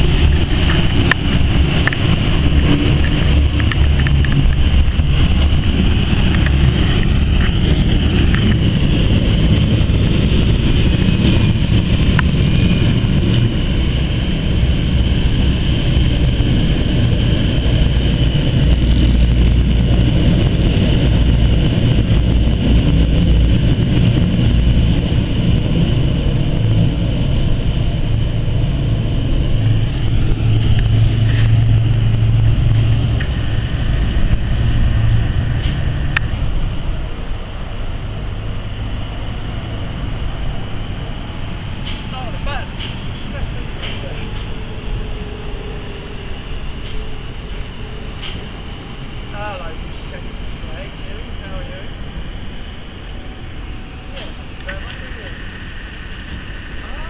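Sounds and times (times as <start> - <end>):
boat engines low rumble: 0.0 - 57.0.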